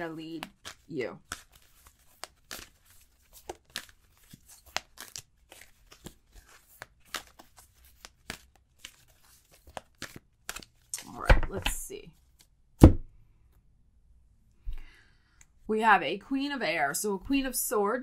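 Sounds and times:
cards shuffling: 0:00.2 - 0:13.0.

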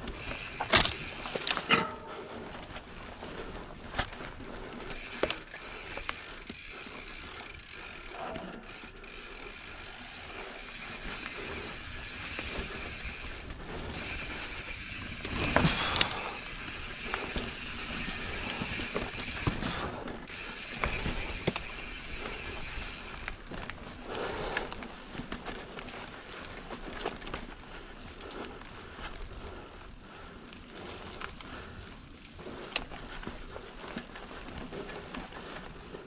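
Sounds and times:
bike clattering: 0:00.0 - 0:26.0
bike chain and frame rattling: 0:00.0 - 0:36.0
bike tyres rolling on dirt: 0:00.0 - 0:36.0.

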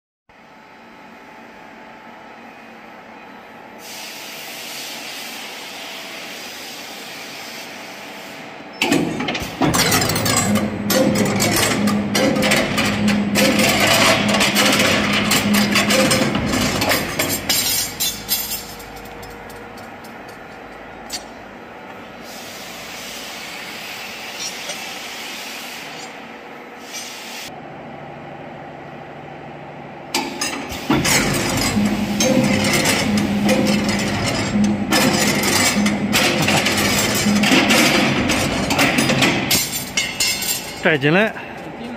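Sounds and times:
bending machine motor hum: 0:08.8 - 0:22.2, 0:27.6 - 0:41.9.

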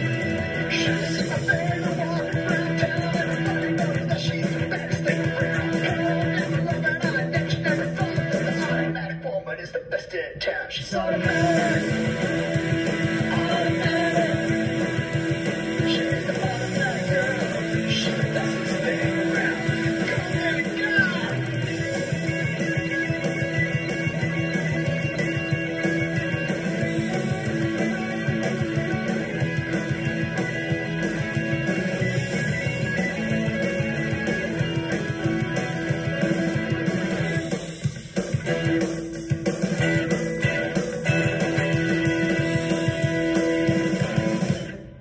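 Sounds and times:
electric guitar: 0:00.0 - 0:09.2, 0:10.9 - 0:45.0
rock and roll band: 0:00.0 - 0:45.0.

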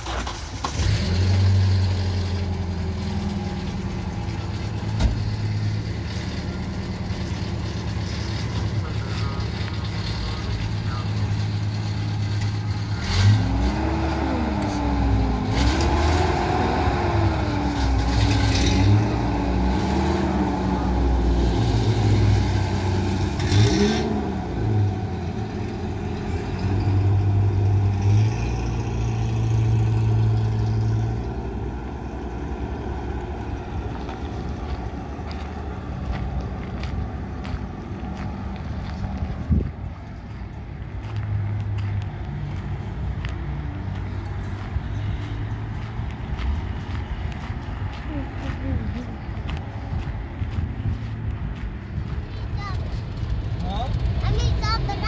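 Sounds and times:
truck engine idling: 0:00.0 - 0:13.4, 0:29.5 - 0:55.0.

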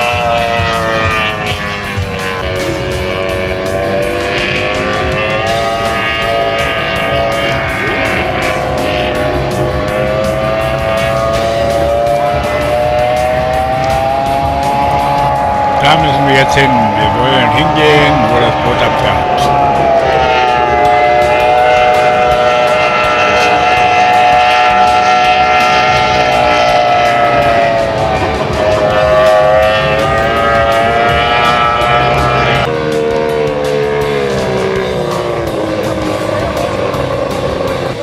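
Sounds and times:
powerboat outboard engine: 0:00.0 - 0:38.0.

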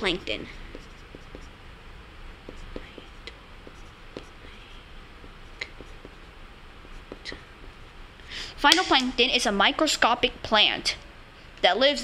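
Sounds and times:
pencil scratching on paper: 0:00.0 - 0:01.6, 0:02.5 - 0:07.5
pencil tapping on paper: 0:00.7 - 0:01.5, 0:02.5 - 0:04.5, 0:05.2 - 0:07.4.

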